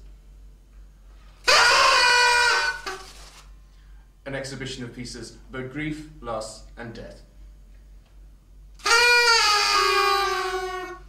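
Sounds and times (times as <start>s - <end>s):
party blowers blast: 1.4s - 3.4s, 8.8s - 11.0s.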